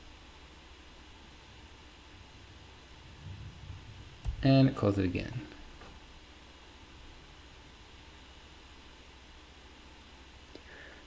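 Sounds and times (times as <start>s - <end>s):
steady hiss: 0.0s - 11.0s
low hum: 1.3s - 8.4s.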